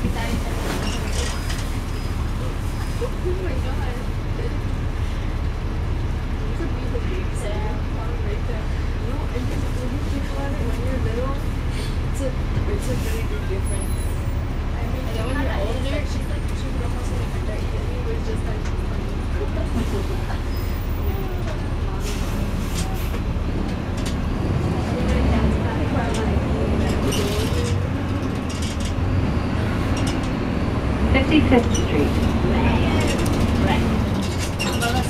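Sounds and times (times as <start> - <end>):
bus engine and road rumble: 0.0 - 35.0
faint passengers' voices: 0.0 - 35.0.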